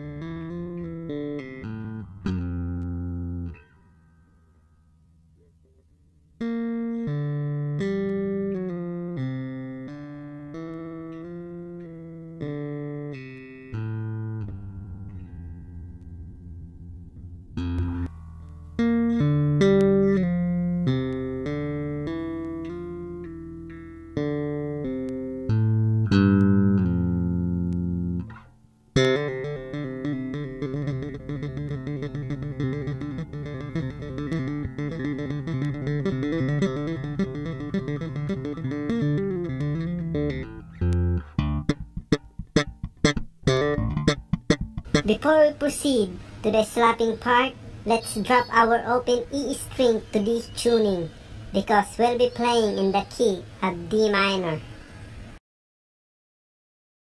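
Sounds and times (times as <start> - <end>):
electric bass guitar: 0.0 - 55.4.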